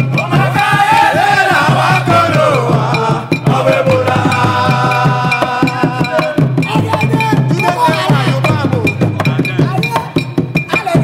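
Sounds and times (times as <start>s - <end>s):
drums and percussion beat: 0.0s - 11.0s
voices singing: 0.0s - 11.0s.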